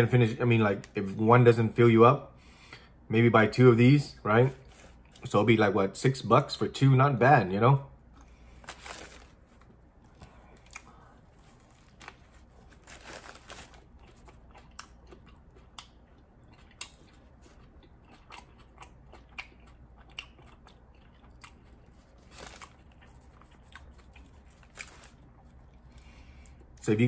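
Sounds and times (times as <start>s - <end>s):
person chewing sandwich: 4.5s - 5.3s, 8.0s - 26.8s.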